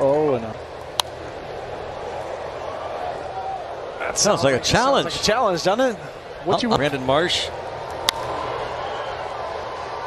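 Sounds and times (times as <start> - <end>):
murmur of ballpark crowd: 0.0 - 10.0.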